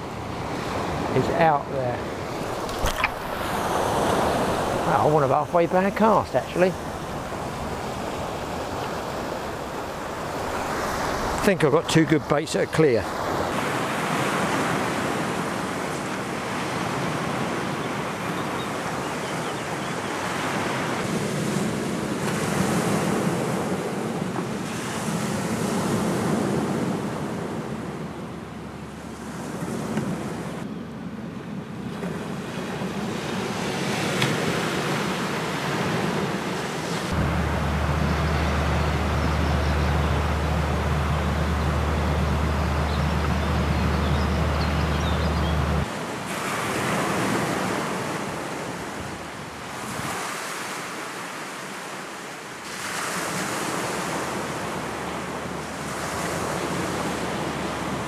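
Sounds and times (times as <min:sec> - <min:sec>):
surf washing over boulders: 0:00.0 - 0:19.1, 0:20.1 - 0:28.2, 0:45.6 - 0:58.0
wind on microphone: 0:02.1 - 0:11.6, 0:31.9 - 0:50.4.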